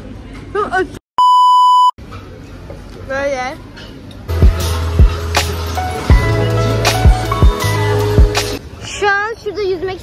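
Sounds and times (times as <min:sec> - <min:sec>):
high-pitched test-tone beep: 0:01.2 - 0:01.9.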